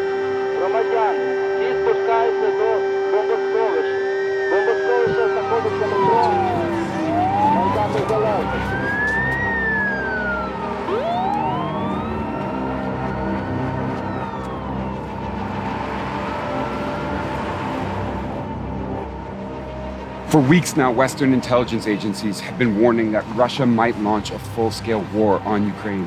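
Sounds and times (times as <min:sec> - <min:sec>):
air raid sirens wailing: 0:00.0 - 0:26.0.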